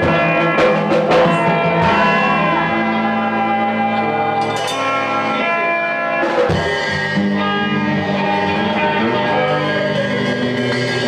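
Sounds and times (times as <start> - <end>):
electric guitar ringing chords: 0.0 - 11.0
rock band playing: 0.0 - 11.0.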